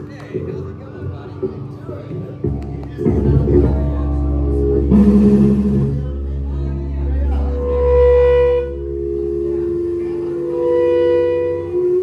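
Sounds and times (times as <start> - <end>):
steady low bass drone: 2.4 - 12.0
loud held horn-like note: 7.3 - 12.0.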